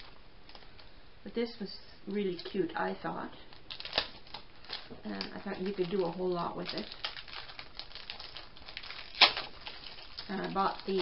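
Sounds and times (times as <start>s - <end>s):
plastic bag crinkling: 3.5s - 11.0s.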